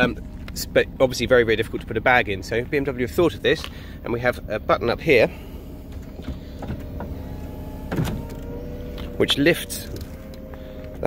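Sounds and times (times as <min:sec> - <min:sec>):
convertible roof motor whine: 0:00.0 - 0:11.0.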